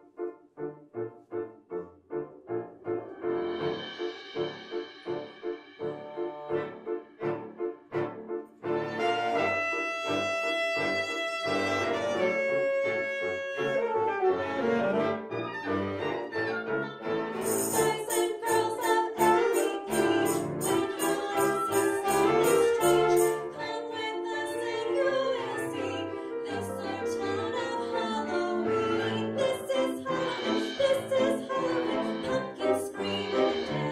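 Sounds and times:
chamber ensemble playing: 5.8 - 33.9.

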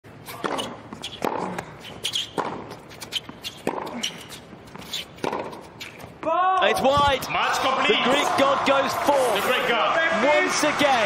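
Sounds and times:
tennis ball bounces: 0.3 - 6.2
tennis racket strikes: 3.5 - 4.2, 5.1 - 6.0.

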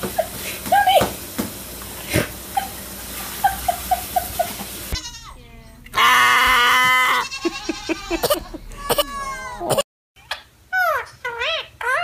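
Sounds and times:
toddler crying: 6.0 - 9.8.

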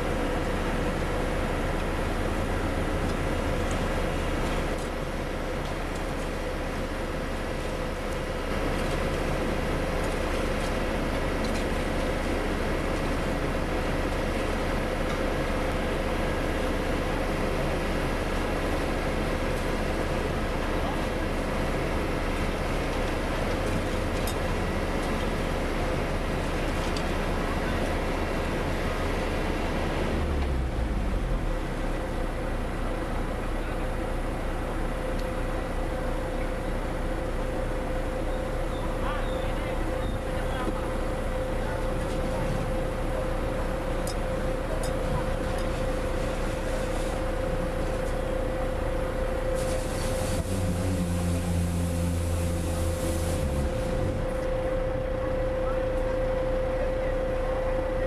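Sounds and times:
diesel truck engine running: 0.0 - 58.0
steady whine: 0.0 - 58.0
loud low drone: 29.8 - 58.0.

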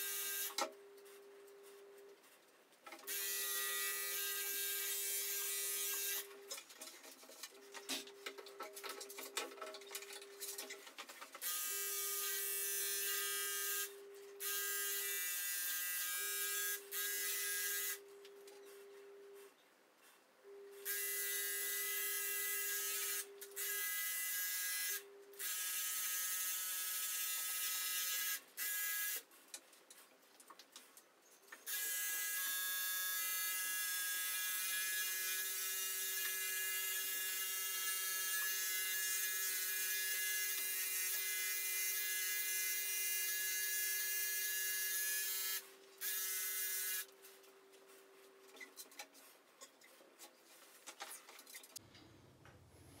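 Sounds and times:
electric hair clippers buzzing: 0.0 - 0.7, 3.1 - 6.4, 11.4 - 18.1, 20.8 - 29.3, 31.7 - 47.2.

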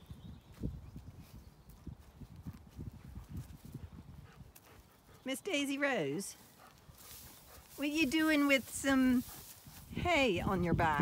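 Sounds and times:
pony pulling hay: 6.3 - 11.0.

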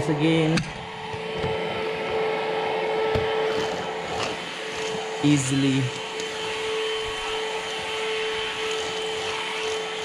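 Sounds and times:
stick vacuum running: 0.0 - 10.0.

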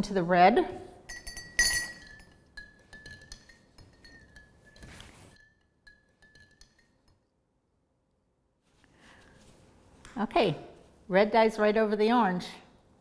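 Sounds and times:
metal spoon clinking glass jar: 1.1 - 7.3.

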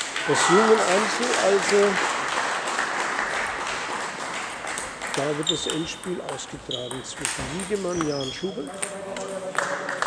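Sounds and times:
applause in large hall: 0.0 - 5.8, 9.4 - 10.0.

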